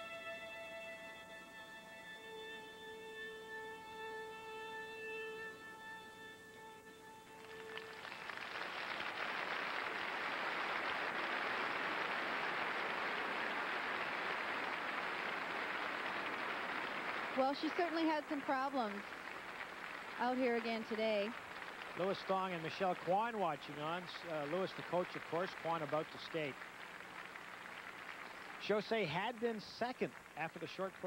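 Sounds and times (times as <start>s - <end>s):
held violin notes: 0.0s - 8.4s
audience applause: 7.4s - 31.0s.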